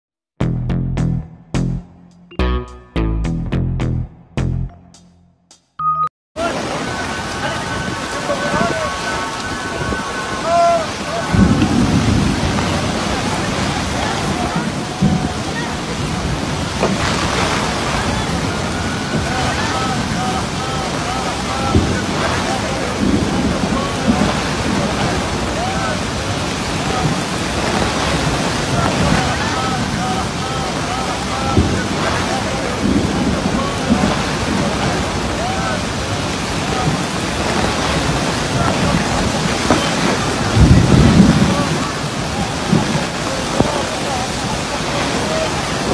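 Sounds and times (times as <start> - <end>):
heavy rain pouring: 6.4 - 45.9
low rumbling surges: 6.4 - 45.9.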